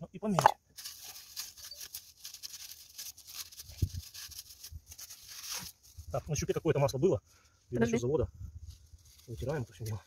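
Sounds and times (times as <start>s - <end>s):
rustling and light scraping: 0.8s - 10.0s.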